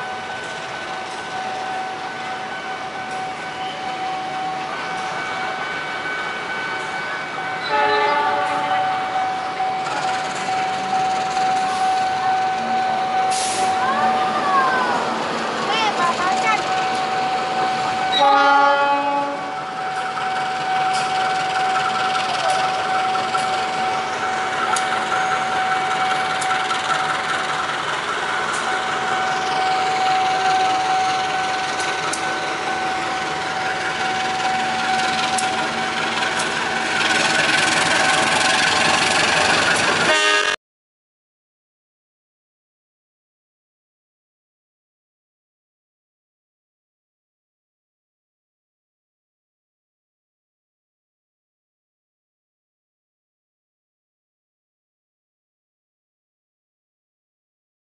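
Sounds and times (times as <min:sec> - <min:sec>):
train engine and rolling noise: 0:00.0 - 0:40.6
locomotive horn blast: 0:07.6 - 0:09.8, 0:17.6 - 0:19.7, 0:40.0 - 0:40.6
steady high tone: 0:19.4 - 0:40.6.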